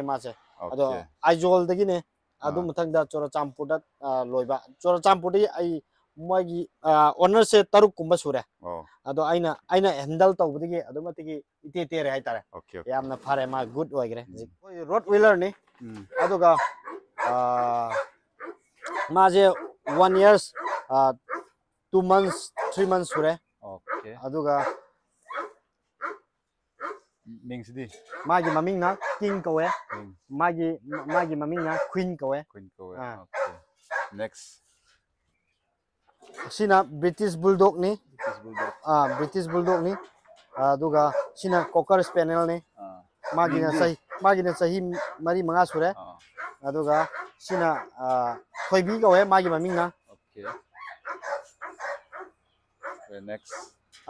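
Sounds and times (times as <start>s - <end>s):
dog barking: 16.1s - 21.5s, 22.2s - 26.2s, 26.8s - 27.0s, 27.9s - 30.1s, 30.9s - 32.0s, 33.3s - 34.2s, 36.3s - 36.6s, 38.2s - 42.2s, 43.2s - 49.8s, 50.4s - 53.8s.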